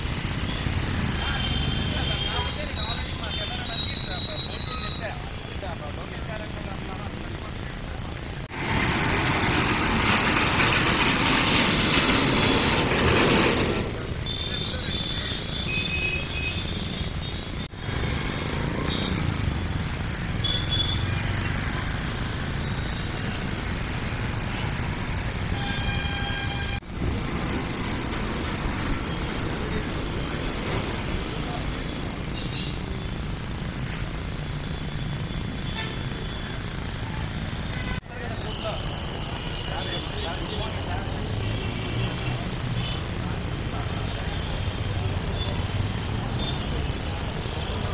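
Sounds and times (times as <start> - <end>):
traffic: 0.0 - 47.9
loud rushing noise: 8.4 - 14.2.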